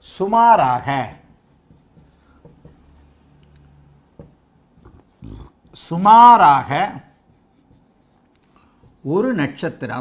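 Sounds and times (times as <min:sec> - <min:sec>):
marker pen writing on whiteboard: 0:00.8 - 0:05.2, 0:06.6 - 0:09.8.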